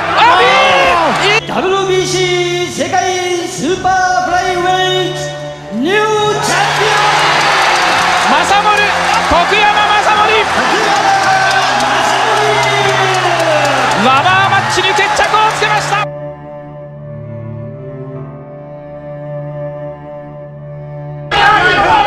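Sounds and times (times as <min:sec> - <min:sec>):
background music with low note: 0:00.3 - 0:22.0
excited voices: 0:06.3 - 0:16.1, 0:21.3 - 0:22.0
crowd cheering and whooping: 0:06.4 - 0:16.1.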